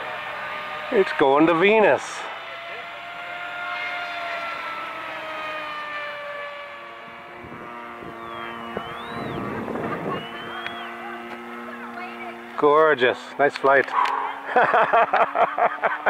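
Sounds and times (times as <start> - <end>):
lower model plane engine drone: 0.0 - 16.0
model plane engine whining: 0.0 - 16.0.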